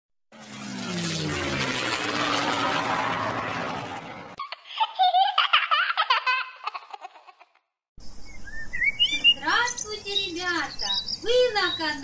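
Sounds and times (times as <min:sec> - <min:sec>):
cartoon propeller plane whoosh: 0:00.3 - 0:04.4.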